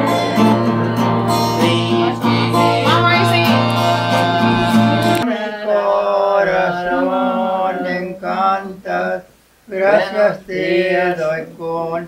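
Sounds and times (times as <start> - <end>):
acoustic guitar: 0.0 - 5.6
person singing drawn-out notes: 0.0 - 8.6
group singing: 0.0 - 12.0.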